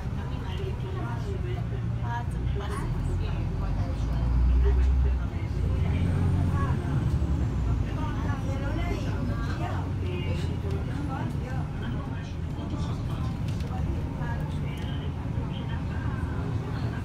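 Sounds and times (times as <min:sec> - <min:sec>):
bus engine rumbling: 0:00.0 - 0:17.0.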